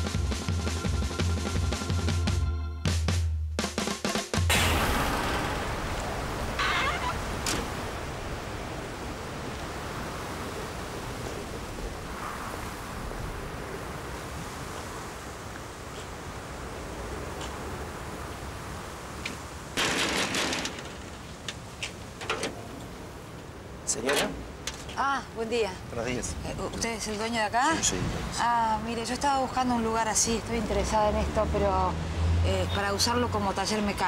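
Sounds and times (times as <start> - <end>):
burst of clatter: 4.5 - 6.6, 19.8 - 21.3
street background hiss: 6.1 - 19.8, 21.0 - 34.0.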